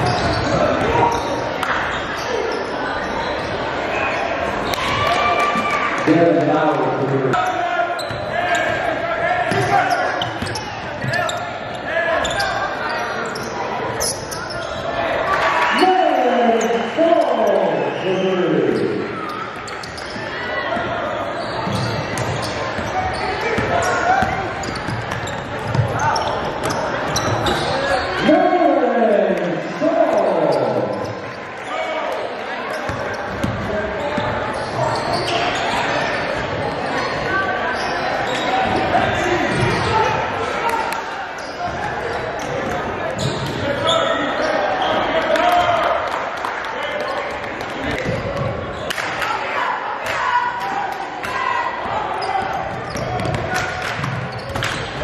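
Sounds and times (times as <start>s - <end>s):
voices echoing in hall: 0.0s - 55.0s.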